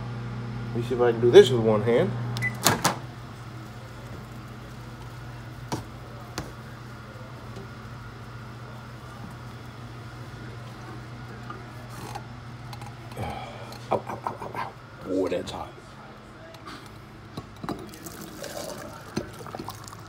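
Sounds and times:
steady low hum: 0.0s - 20.0s
microwave beep: 2.4s - 3.0s.

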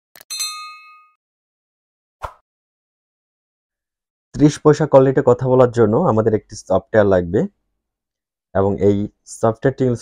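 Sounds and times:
notification bell ding: 0.2s - 1.2s.

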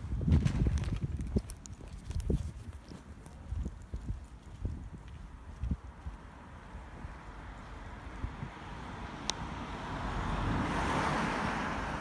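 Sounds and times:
footsteps on paving stones: 0.0s - 6.5s.

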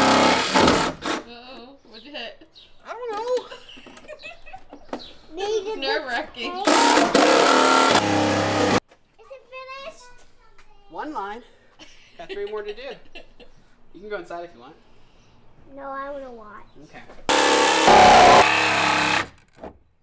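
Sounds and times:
power saw cutting sheet steel: 0.0s - 1.0s, 6.6s - 8.8s, 17.3s - 19.4s.

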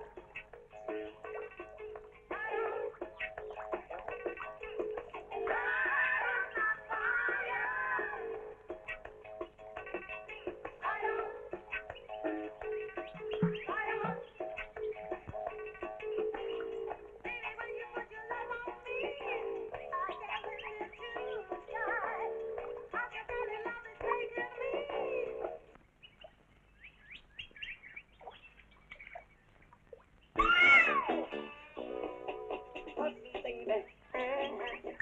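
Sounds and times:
loud meow-like cry: 30.4s - 31.8s.

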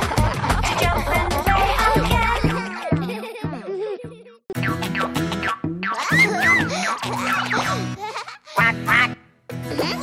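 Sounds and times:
children's song music: 0.0s - 10.0s.

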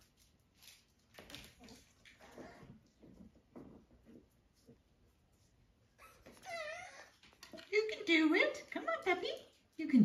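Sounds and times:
puppy whining: 1.6s - 3.0s, 5.9s - 7.6s.

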